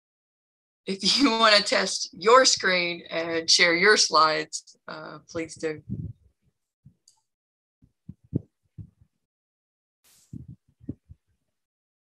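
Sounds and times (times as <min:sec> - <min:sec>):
soft low thuds: 0:05.4 - 0:06.3, 0:07.9 - 0:09.1, 0:10.1 - 0:11.3.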